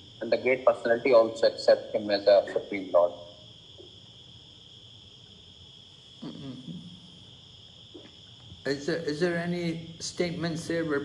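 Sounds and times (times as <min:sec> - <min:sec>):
faint voice murmuring: 0:06.2 - 0:06.9.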